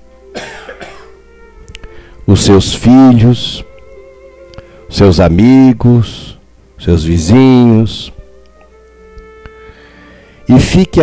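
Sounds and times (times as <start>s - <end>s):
man coughing: 0.4s - 1.2s.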